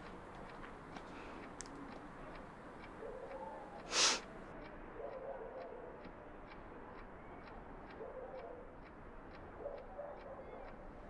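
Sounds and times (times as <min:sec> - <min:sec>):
clock ticking: 0:00.0 - 0:11.0.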